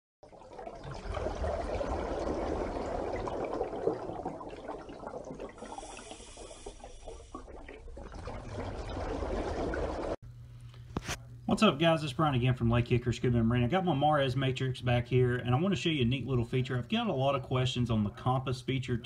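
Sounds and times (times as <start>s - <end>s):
water bubbling and rushing: 0.2s - 10.2s.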